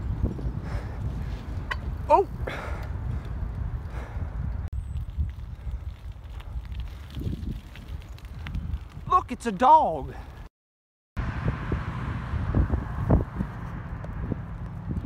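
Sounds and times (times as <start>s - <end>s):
bike tyre rumble on asphalt: 0.0s - 10.5s, 11.2s - 15.0s
wind rumbling on microphone: 0.0s - 10.5s, 11.2s - 15.0s.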